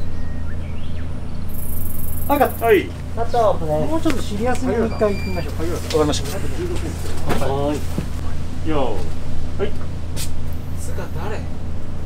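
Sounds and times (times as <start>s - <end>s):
faint chirps: 0.0s - 2.8s
steady low rumble: 0.0s - 12.0s.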